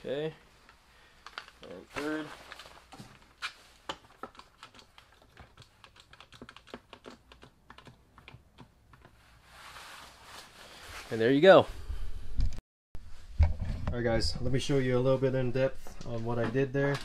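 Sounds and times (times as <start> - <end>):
soft rustle: 9.2 - 11.6.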